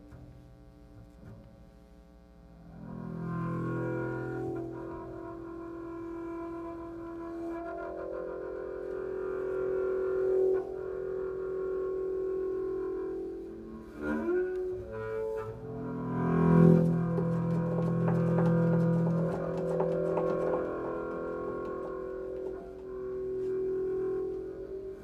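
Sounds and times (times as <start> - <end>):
bowed double bass notes: 0.0 - 25.0.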